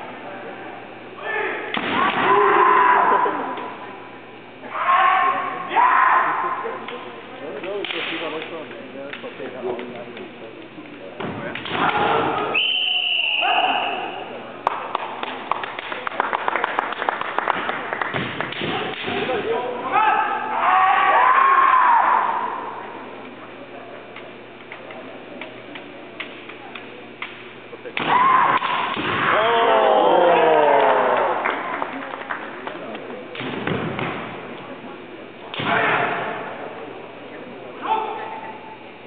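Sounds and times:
voices in a hall: 0:00.0 - 0:39.0.

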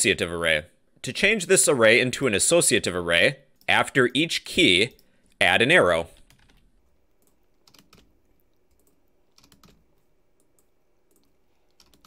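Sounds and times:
keystrokes on computer keyboard: 0:06.2 - 0:12.0.

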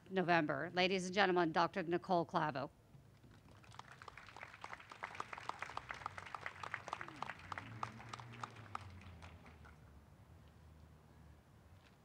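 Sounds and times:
small audience clapping: 0:03.3 - 0:10.0.

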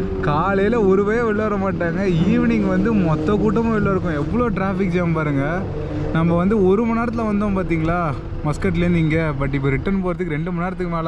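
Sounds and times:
road traffic: 0:00.0 - 0:11.0
man talking: 0:00.2 - 0:11.0.

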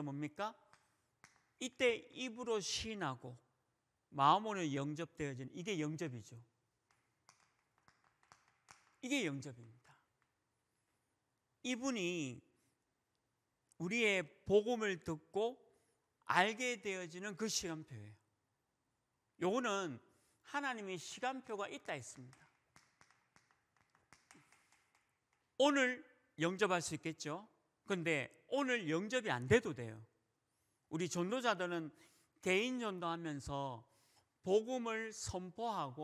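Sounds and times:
chalk tapping on chalkboard: 0:06.9 - 0:09.0, 0:22.3 - 0:25.4.

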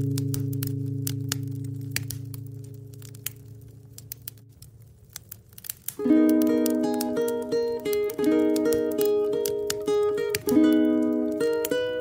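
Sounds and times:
guitar chord ringing: 0:00.0 - 0:04.0, 0:06.0 - 0:12.0
wood stove fire crackling: 0:00.0 - 0:12.0.

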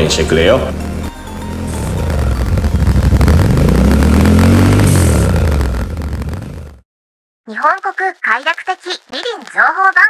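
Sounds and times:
motorcycle engine revving: 0:00.0 - 0:06.8.

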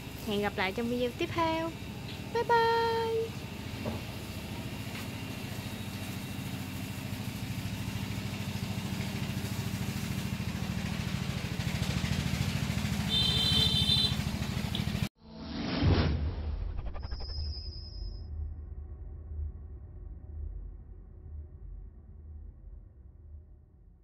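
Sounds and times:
small engine running: 0:00.0 - 0:15.1.

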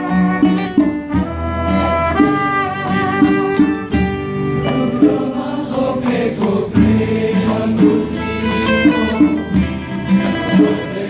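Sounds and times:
acoustic instruments and hand drums: 0:00.0 - 0:11.0
drum beat: 0:02.2 - 0:11.0
crowd singing together: 0:04.4 - 0:11.0.

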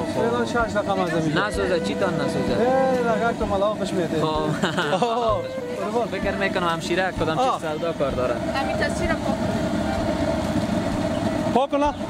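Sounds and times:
vehicle engines running: 0:00.0 - 0:12.0.

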